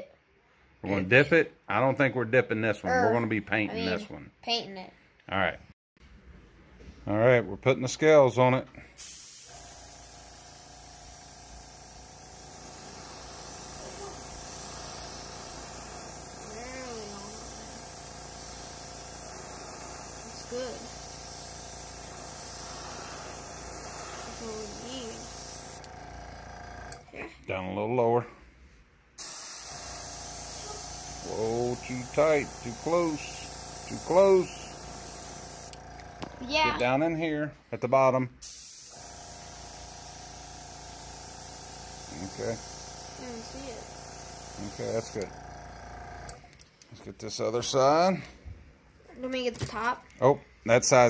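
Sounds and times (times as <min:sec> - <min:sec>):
airbrush spraying hiss: 0:09.0 - 0:25.9, 0:29.2 - 0:35.8, 0:38.4 - 0:45.3.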